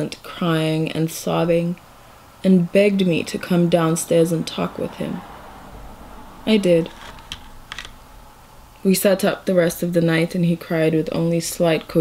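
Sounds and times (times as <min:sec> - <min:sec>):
woman reading aloud: 0:00.0 - 0:01.8, 0:02.4 - 0:05.3, 0:06.5 - 0:07.0, 0:08.8 - 0:12.0.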